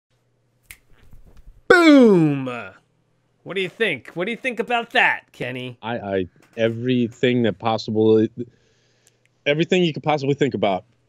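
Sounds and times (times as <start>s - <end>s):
man exclaiming: 1.7s - 2.8s.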